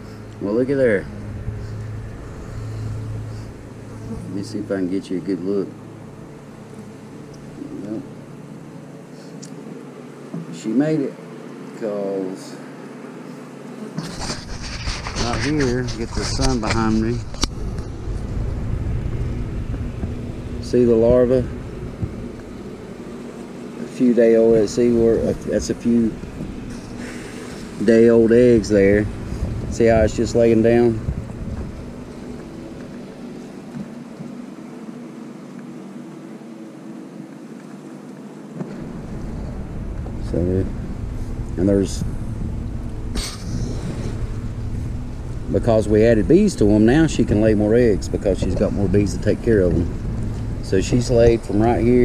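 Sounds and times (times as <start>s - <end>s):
bees buzzing: 0.0s - 52.0s
honeybees humming: 0.0s - 52.0s
brief hiss: 43.1s - 44.2s.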